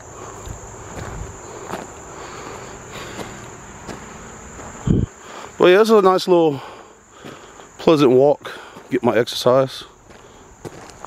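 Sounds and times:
footsteps on gravel: 0:00.0 - 0:11.0
insects chorus: 0:00.0 - 0:11.0.

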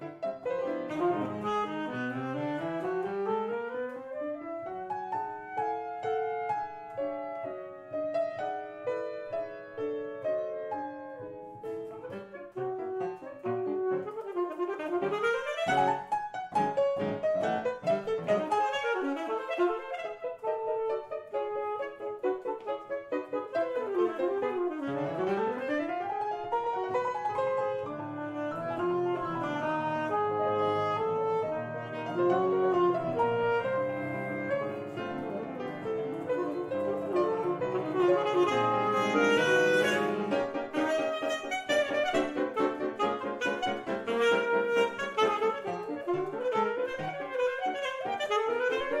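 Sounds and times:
alto saxophone: 0:00.0 - 0:49.0
piano accompaniment: 0:00.0 - 0:49.0.

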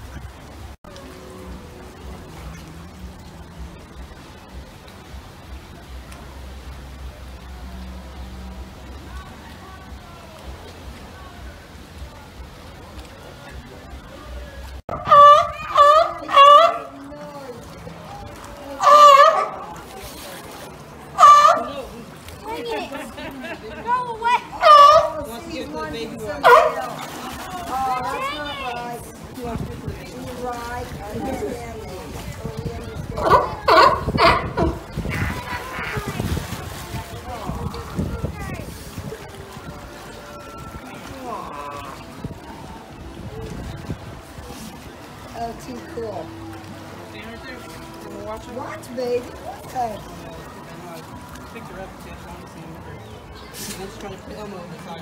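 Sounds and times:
crowd voices: 0:00.0 - 0:55.0
music: 0:00.8 - 0:14.8, 0:36.7 - 0:54.0
loud calls: 0:14.9 - 0:17.0, 0:18.7 - 0:19.9, 0:21.1 - 0:21.9, 0:24.2 - 0:25.4
sea lion barking: 0:14.9 - 0:17.0, 0:18.8 - 0:19.9, 0:21.1 - 0:21.9, 0:24.3 - 0:25.3, 0:26.4 - 0:27.0, 0:33.2 - 0:36.1.

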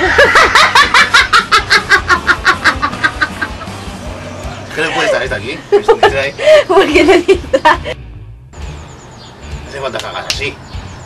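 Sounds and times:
man laughing heartily: 0:00.0 - 0:03.9, 0:04.6 - 0:08.0.

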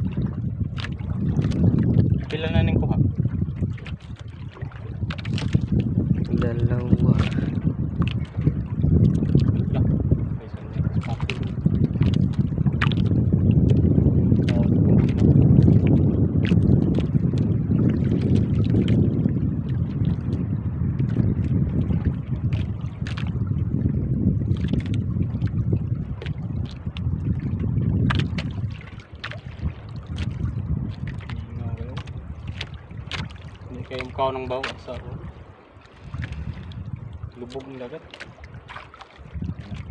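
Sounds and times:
water slapping against hull: 0:00.0 - 0:39.9
wind rumbling on microphone: 0:00.0 - 0:39.9.

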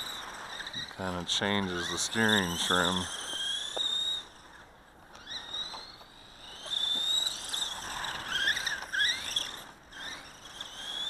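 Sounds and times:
rc car motor whine: 0:00.0 - 0:11.0.

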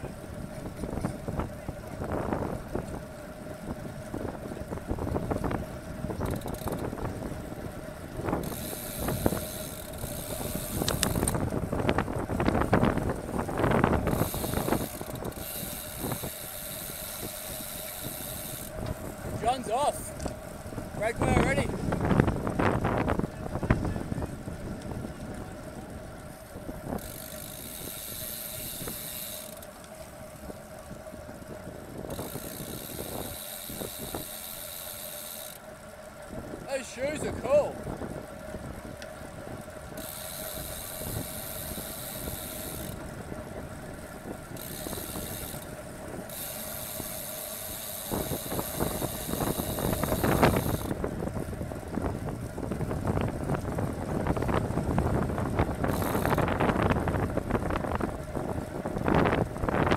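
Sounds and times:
wind on microphone: 0:00.0 - 0:29.3, 0:31.2 - 0:34.6, 0:36.3 - 0:59.9
bicycle tyre and road noise: 0:00.0 - 0:59.9
constant hum: 0:00.0 - 0:59.9.

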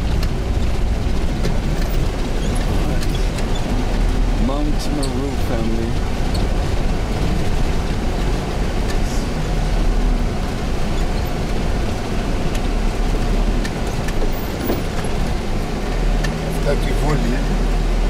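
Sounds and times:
bus engine drone: 0:00.0 - 0:18.0
tyres rumbling on gravel: 0:00.0 - 0:18.0.

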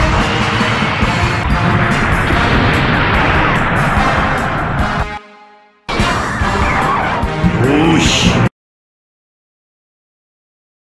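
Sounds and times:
background music: 0:00.0 - 0:08.5
rushing engine-like battle effect: 0:00.0 - 0:08.5.

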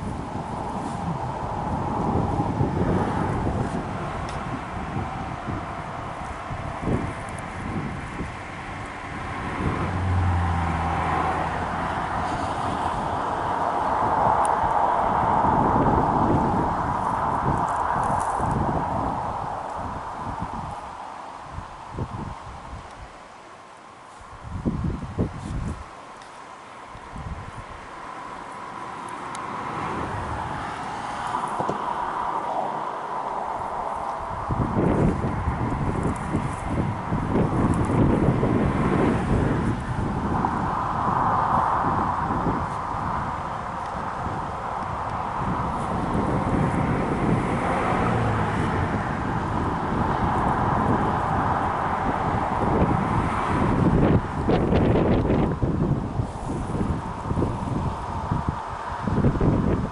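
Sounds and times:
vehicle passing: 0:00.0 - 0:21.4, 0:27.6 - 0:59.9
wind buffeting microphone: 0:00.0 - 0:23.4, 0:24.0 - 0:26.2, 0:26.8 - 0:59.9
highway traffic: 0:00.0 - 0:59.9.

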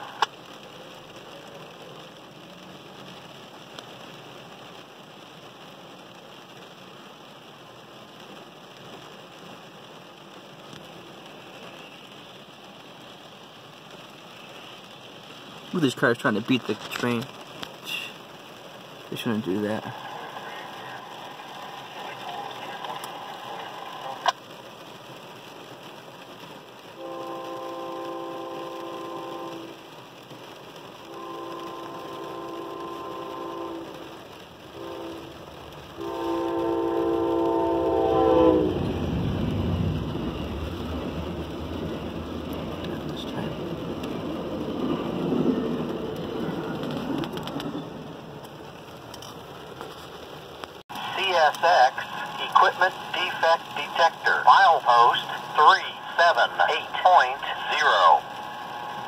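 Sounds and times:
train wheels rushing on rail: 0:19.6 - 0:24.3, 0:31.1 - 0:48.8
train horn blasts: 0:27.0 - 0:29.8, 0:31.0 - 0:39.0.

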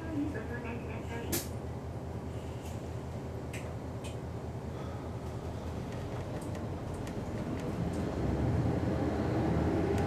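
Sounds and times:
bus diesel engine idling: 0:00.0 - 0:08.1.

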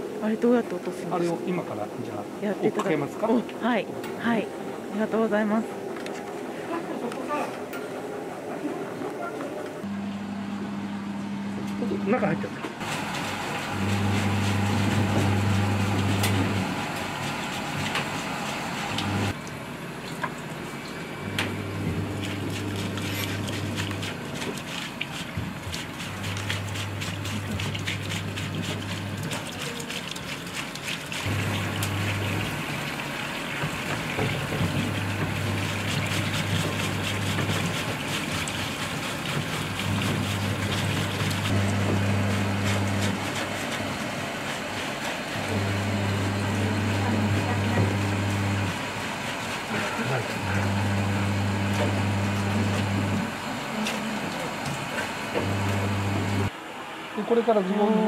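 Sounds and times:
brush scrubbing fabric: 0:12.8 - 0:16.1, 0:21.9 - 0:32.5, 0:34.5 - 0:53.2
tap water running into sink: 0:21.4 - 0:43.2.

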